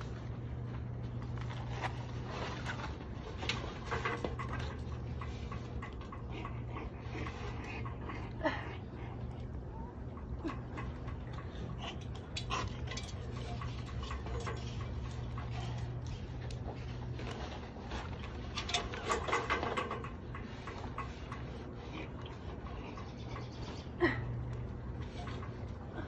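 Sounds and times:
clicks and rustling of nest material: 0.0 - 8.0
steady low hum: 0.0 - 26.0.

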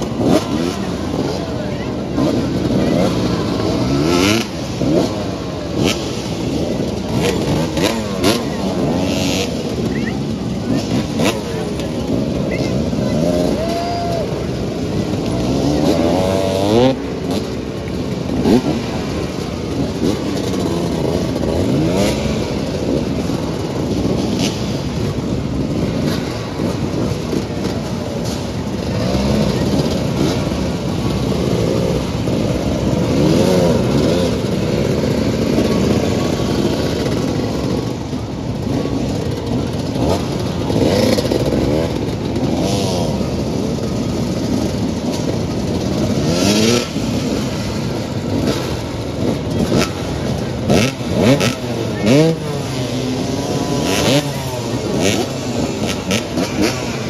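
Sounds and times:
motorcycle engines revving: 0.0 - 57.0.

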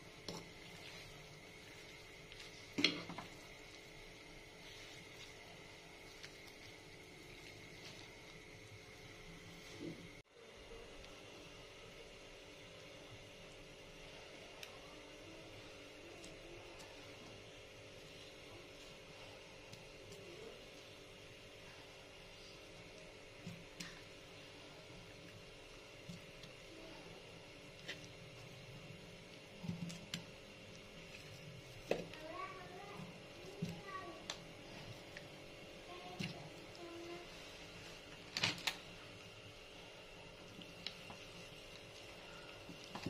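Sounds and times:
faint appliance hum: 0.0 - 43.0.

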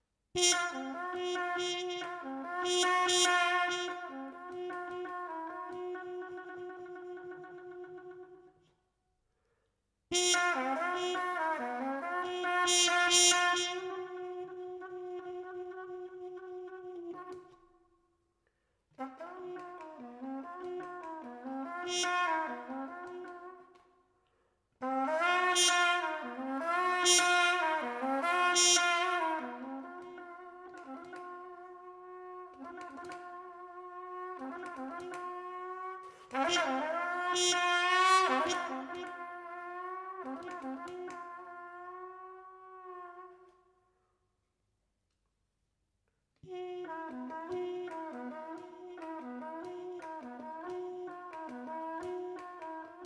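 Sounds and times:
solo trumpet playing: 0.4 - 8.7, 10.1 - 17.6, 19.0 - 24.0, 24.8 - 43.6, 46.4 - 53.0.

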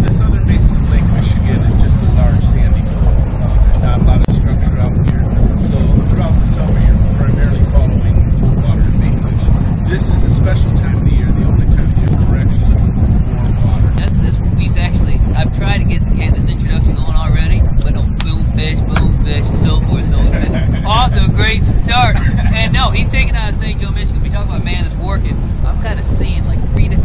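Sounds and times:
boat engine low rumble: 0.0 - 27.0
men's voices: 0.0 - 27.0.

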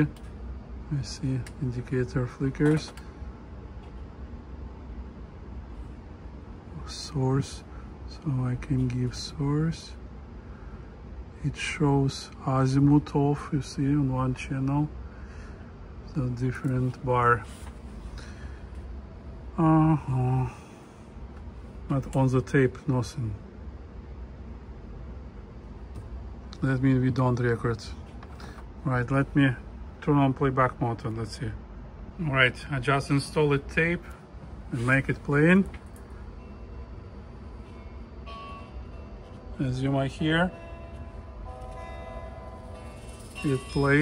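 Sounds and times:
steady low hum: 0.0 - 44.0.

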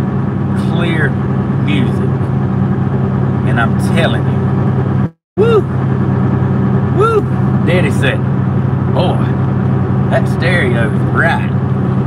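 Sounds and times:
road noise inside cab: 0.0 - 12.0
truck engine drone: 0.0 - 12.0.

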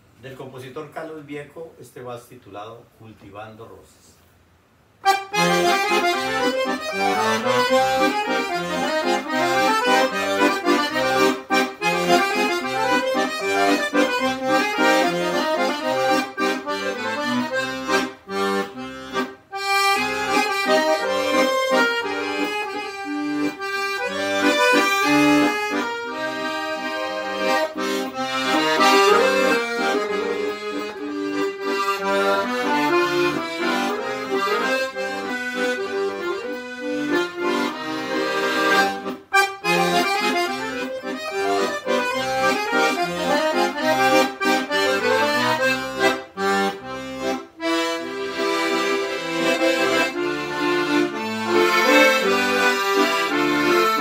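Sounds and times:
accordion playing a waltz: 5.0 - 54.0.

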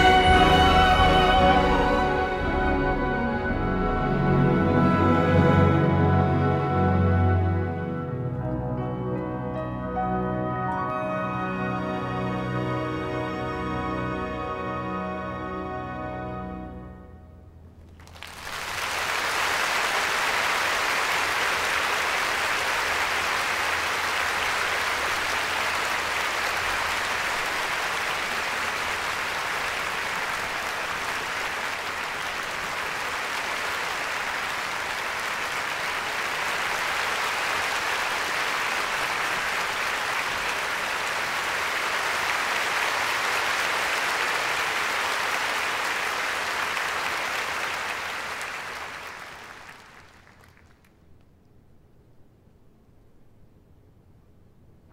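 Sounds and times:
audience applauding: 17.9 - 50.9.

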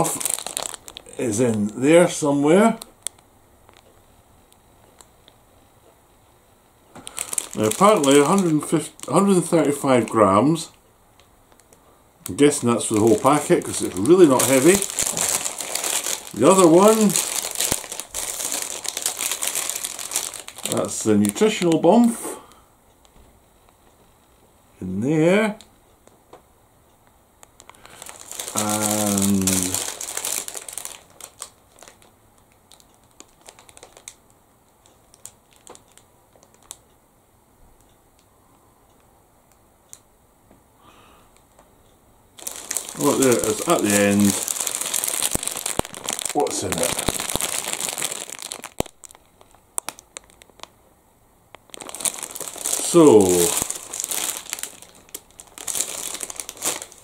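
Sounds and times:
plastic packaging crinkling: 0.0 - 4.0, 6.9 - 10.8, 11.5 - 22.2, 27.4 - 36.9, 42.4 - 50.8, 51.5 - 57.0.

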